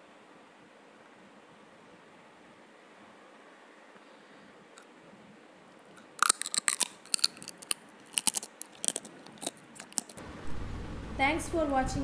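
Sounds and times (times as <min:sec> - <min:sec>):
crab shell cracking: 0:05.9 - 0:10.2.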